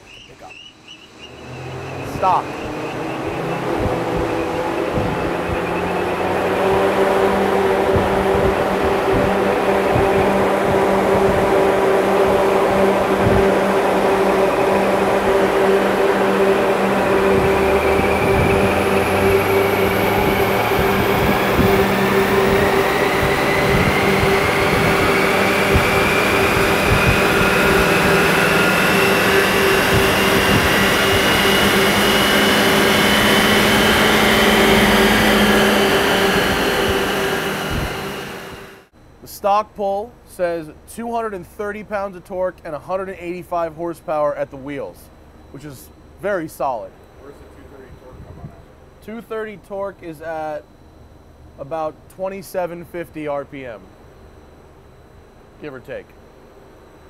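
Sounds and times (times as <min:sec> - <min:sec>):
steady loud dyno hum: 0:00.0 - 0:57.0
car engine full-throttle pull: 0:01.1 - 0:38.9.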